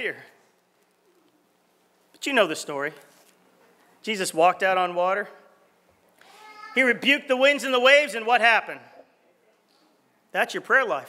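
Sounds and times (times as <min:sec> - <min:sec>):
man speaking: 0:00.0 - 0:00.4, 0:02.2 - 0:03.1, 0:04.0 - 0:05.5, 0:06.8 - 0:09.1, 0:10.3 - 0:11.0.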